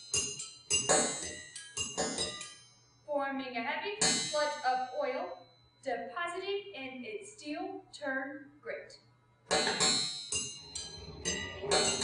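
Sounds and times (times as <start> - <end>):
metallic clang ringing: 0.0 - 3.0, 4.0 - 4.9, 9.5 - 12.0
wavering pitched tone: 9.5 - 12.0.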